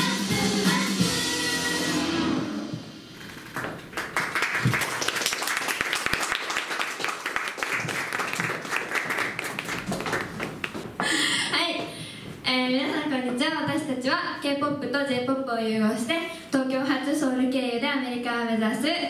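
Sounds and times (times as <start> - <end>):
pop song music: 0.0 - 3.0
audience clapping: 3.4 - 11.0.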